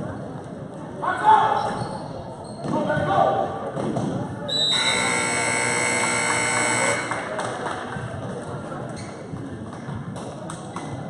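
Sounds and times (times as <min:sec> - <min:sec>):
gym buzzer tone: 0:04.7 - 0:07.3.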